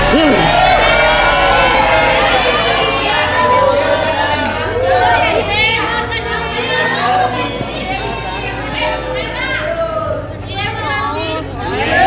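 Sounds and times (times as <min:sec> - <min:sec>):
excited voices talking: 0:00.0 - 0:12.0.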